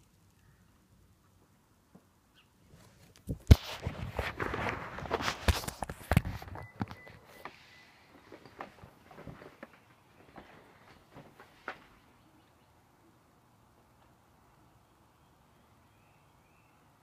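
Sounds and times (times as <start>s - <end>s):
knocks and rubbing on microphone: 2.8s - 7.5s.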